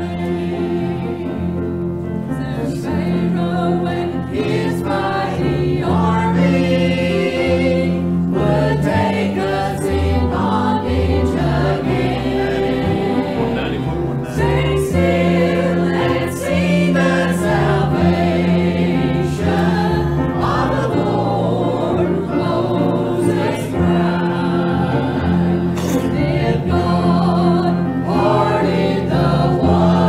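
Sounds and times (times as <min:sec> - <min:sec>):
church choir singing: 0:00.0 - 0:30.0
sustained low notes: 0:11.1 - 0:21.8.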